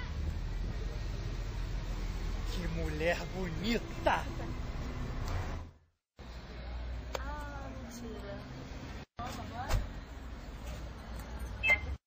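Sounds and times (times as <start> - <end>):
street rumble: 0.0 - 12.0.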